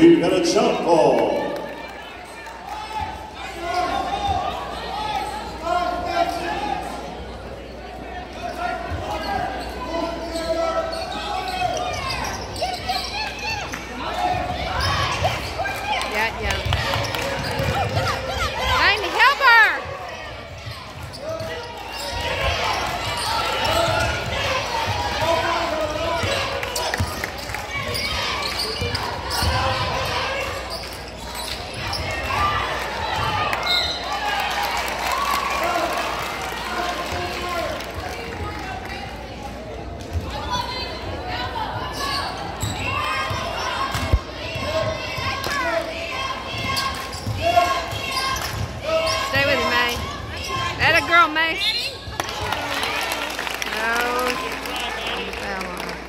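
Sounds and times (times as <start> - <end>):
murmur of voices: 0.0 - 56.0
basketball bouncing on wooden court: 16.5 - 18.8.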